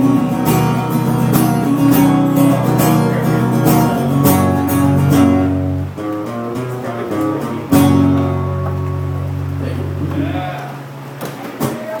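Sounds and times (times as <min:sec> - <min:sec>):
acoustic guitar chord ringing: 0:00.0 - 0:11.2
voices: 0:00.4 - 0:05.6, 0:09.5 - 0:12.0.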